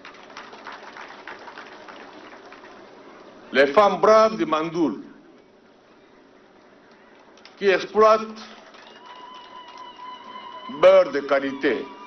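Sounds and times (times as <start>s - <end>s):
audience applauding: 0.0s - 2.9s, 8.4s - 12.0s.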